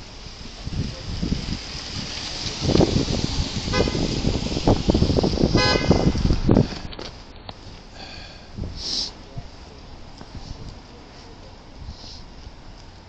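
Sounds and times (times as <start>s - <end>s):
street traffic rumble: 0.0s - 13.0s
car horn toots: 3.7s - 4.2s, 5.5s - 6.2s.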